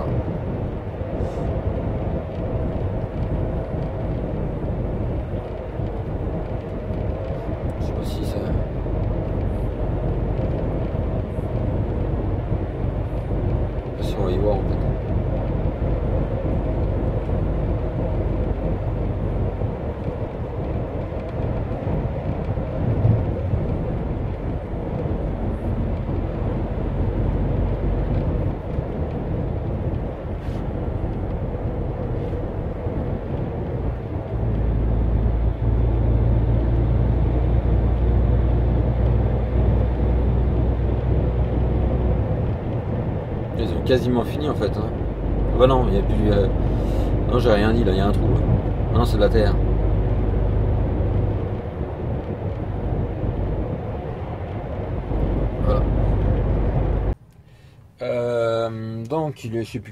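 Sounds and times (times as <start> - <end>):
diesel engine drone: 0.0 - 59.9
tyres on road: 0.0 - 59.9.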